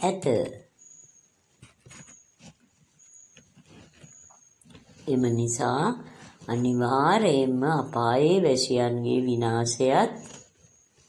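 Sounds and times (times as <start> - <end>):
person reading aloud: 0.0 - 0.6, 5.1 - 10.4.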